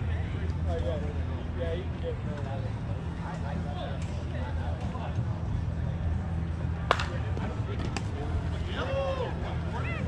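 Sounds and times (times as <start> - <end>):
bat cracking against ball: 6.9 - 7.2.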